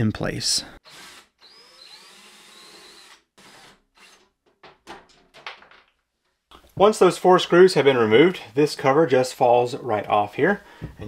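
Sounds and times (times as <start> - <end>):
cordless drill motor whining: 0.8 - 4.2.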